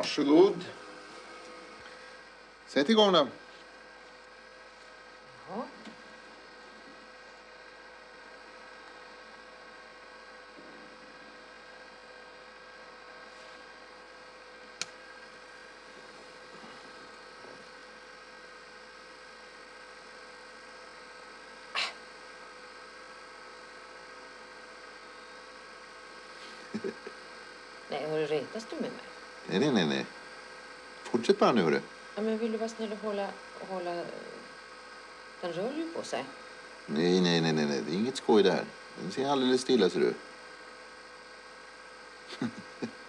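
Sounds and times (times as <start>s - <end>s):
electronic hum and hiss: 0.0s - 43.0s.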